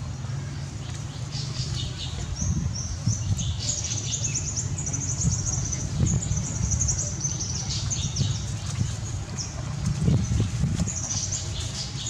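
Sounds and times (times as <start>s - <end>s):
small birds chirping: 0.0s - 12.0s
steady low rumble: 0.0s - 12.0s.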